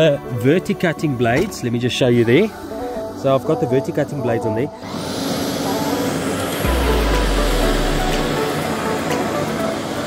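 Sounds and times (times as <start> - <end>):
lawn scarifier motor whine: 4.8 - 10.0
deep rumble: 6.6 - 8.5.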